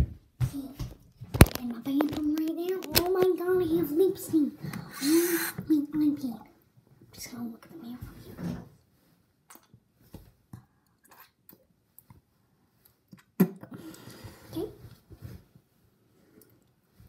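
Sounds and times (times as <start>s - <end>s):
child vocal noise: 4.6s - 5.7s.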